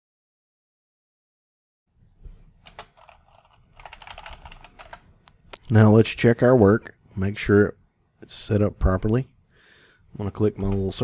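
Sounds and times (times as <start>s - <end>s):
typing on computer keyboard: 2.6s - 5.1s.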